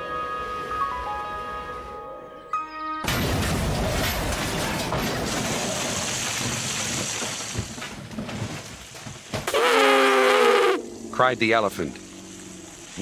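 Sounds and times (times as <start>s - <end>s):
clattering debris: 3.0s - 9.5s
model train crashing through shed: 3.0s - 9.6s.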